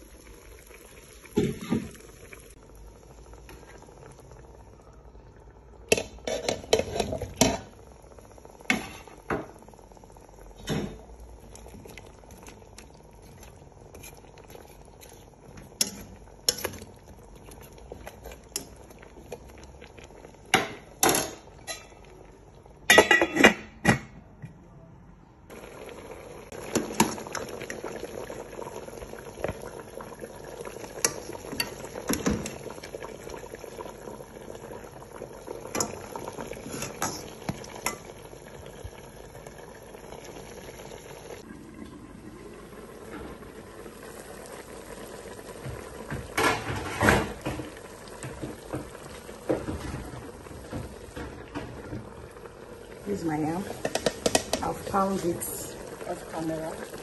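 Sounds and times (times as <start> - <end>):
soup boiling: 0.0 - 23.8, 25.5 - 57.0
metal spoon scraping pot: 6.2 - 7.5.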